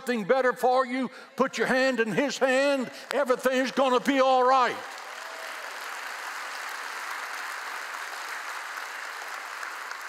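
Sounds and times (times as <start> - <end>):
crowd applauding: 4.6 - 10.0.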